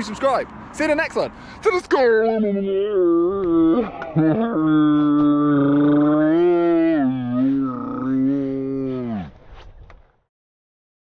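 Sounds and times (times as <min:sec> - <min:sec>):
man mock mooing: 0:02.0 - 0:09.3.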